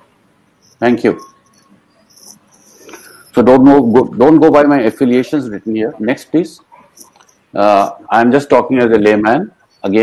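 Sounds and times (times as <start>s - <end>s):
high-pitched chirping: 0.6s - 3.4s
person speaking: 0.7s - 1.4s, 2.2s - 10.0s.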